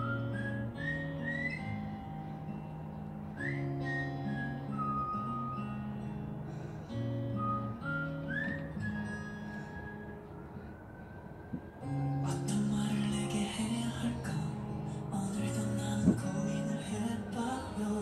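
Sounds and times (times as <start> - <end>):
instrumental music with held notes: 0.0 - 18.0.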